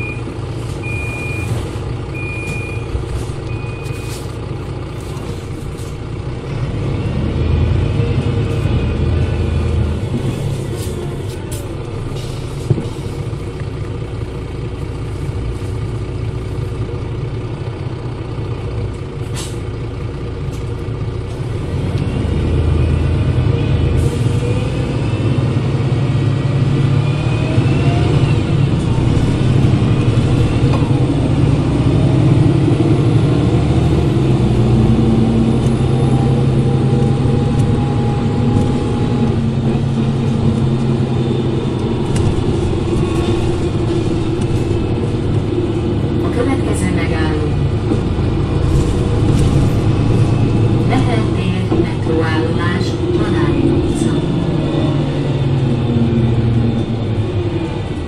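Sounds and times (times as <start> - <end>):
bus diesel engine running: 0.0 - 58.0
engine whine rising in pitch: 21.6 - 51.0, 53.1 - 58.0.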